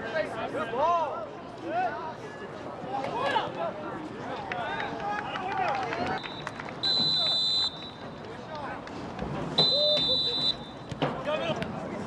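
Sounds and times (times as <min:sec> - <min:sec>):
referee's whistle blast: 0:06.2 - 0:08.0, 0:09.6 - 0:10.8.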